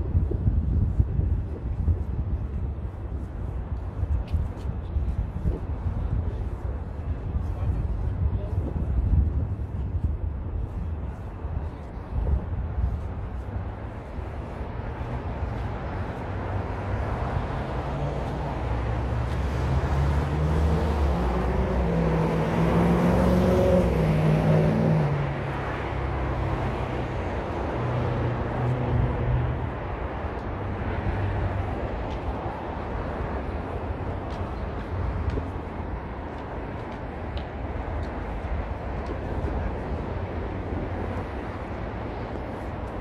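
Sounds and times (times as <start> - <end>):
street traffic rumble: 0.0 - 43.0
motor vehicle passing: 14.9 - 29.9.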